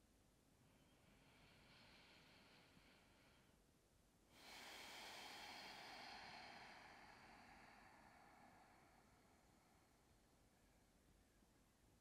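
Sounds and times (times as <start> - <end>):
slow breath out: 0.7 - 3.6, 4.3 - 10.4.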